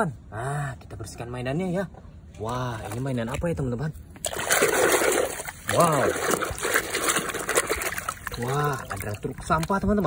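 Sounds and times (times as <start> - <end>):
splashing in muddy water: 2.7 - 10.0.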